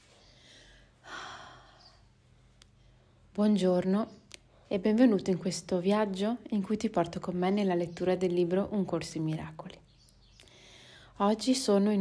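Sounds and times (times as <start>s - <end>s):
woman breathing: 0.0s - 3.3s, 10.4s - 11.2s.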